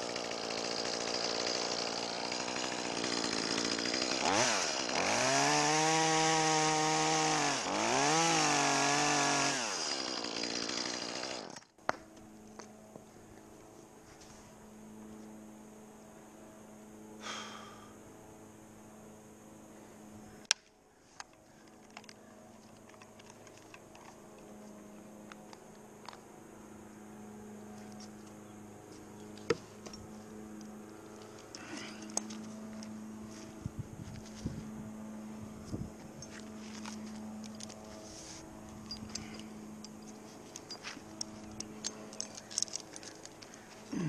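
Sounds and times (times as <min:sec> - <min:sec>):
climbing hardware clicks and knocks: 0:21.2 - 0:24.6, 0:38.8 - 0:43.9.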